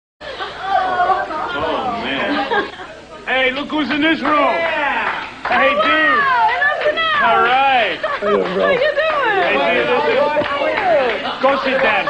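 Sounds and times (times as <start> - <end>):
indistinct voices chattering: 0.2 - 12.0.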